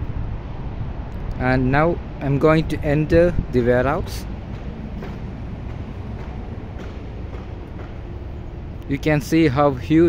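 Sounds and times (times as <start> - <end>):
low background rumble: 0.0 - 10.0
footsteps on concrete floor: 4.4 - 8.2.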